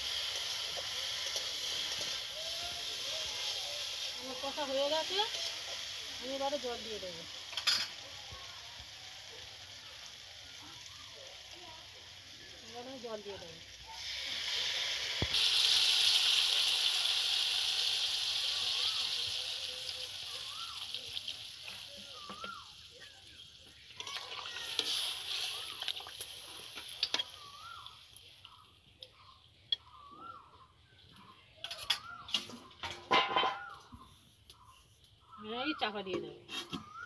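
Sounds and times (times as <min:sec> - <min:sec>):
water hissing in hot oil: 0:00.0 - 0:28.7
curry bubbling and sizzling: 0:00.0 - 0:29.2.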